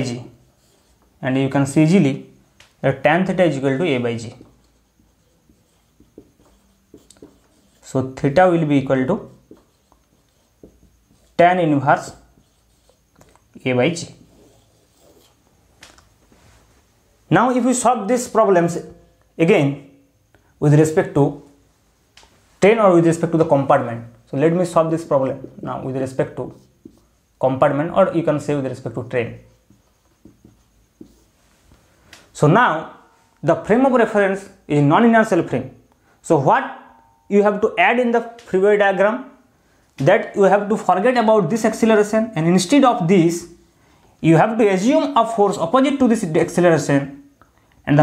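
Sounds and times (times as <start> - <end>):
marker pen on whiteboard: 0.0 - 16.6, 17.4 - 35.5, 40.0 - 43.6, 44.3 - 47.6.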